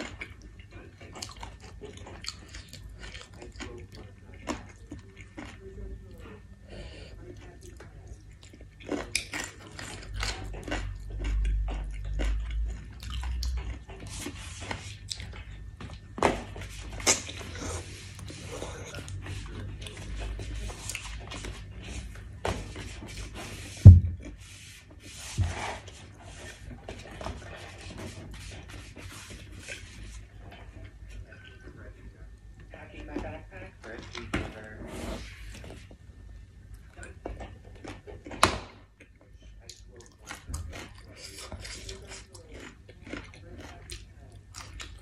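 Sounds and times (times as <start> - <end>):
chewing and biting food: 0.0 - 6.5, 7.3 - 24.4, 37.0 - 45.0
loud thump: 23.8 - 24.2.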